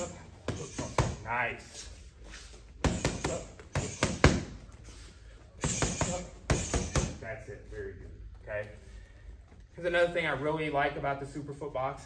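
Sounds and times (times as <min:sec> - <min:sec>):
boxing gloves smacking: 0:02.8 - 0:04.6, 0:05.6 - 0:07.2.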